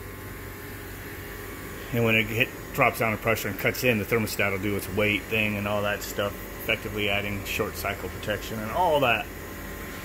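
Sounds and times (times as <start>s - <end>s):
heat pump compressor and blower hum: 0.0s - 10.0s.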